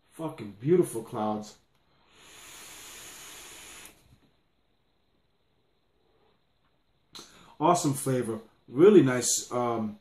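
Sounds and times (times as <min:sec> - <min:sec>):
hiss of air drawn through atomizer: 0:01.9 - 0:04.2.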